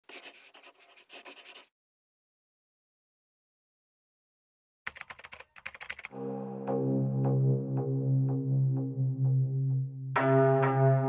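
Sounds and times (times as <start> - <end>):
scratchy rubbing strokes: 0.0 - 1.7.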